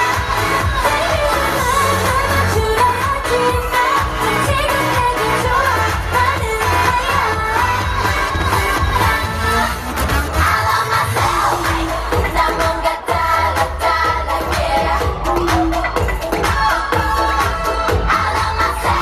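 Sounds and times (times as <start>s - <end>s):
pop dance song over speakers: 0.0s - 19.0s.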